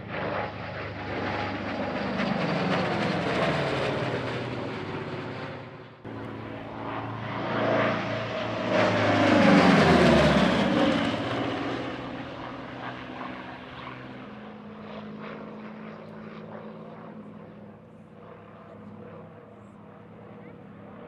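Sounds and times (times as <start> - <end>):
propeller aircraft engine drone: 0.0 - 21.0.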